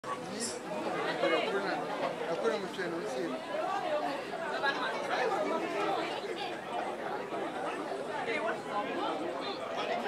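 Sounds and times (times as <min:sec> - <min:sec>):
chatter of many guests: 0:00.0 - 0:10.0.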